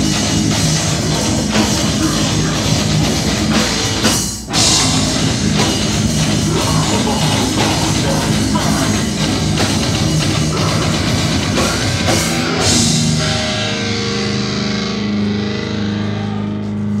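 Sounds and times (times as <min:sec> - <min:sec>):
heavy metal band playing: 0:00.0 - 0:17.0.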